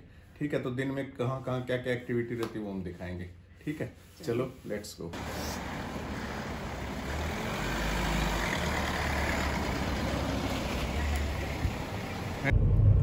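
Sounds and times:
car engine low rumble: 0:05.2 - 0:13.0
engine and road noise in cabin: 0:05.2 - 0:13.0.

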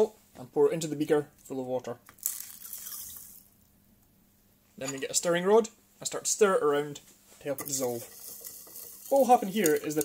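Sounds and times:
salt grains splashing into water: 0:02.2 - 0:03.4.

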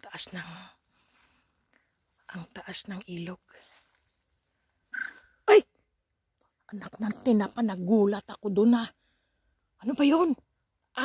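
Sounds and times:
short animal call: 0:04.9 - 0:05.3.

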